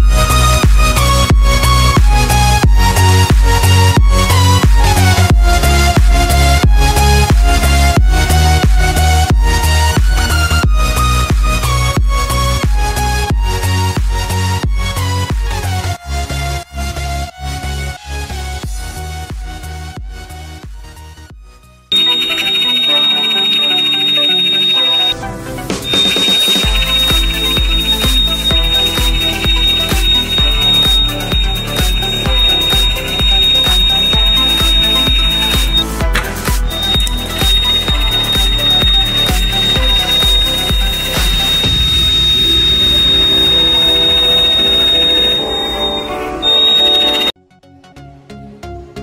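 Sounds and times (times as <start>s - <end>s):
electronic music with bass beat: 0.0s - 15.8s, 21.9s - 47.3s
electronic buzzer high-pitched tone: 21.9s - 25.2s, 25.8s - 47.4s.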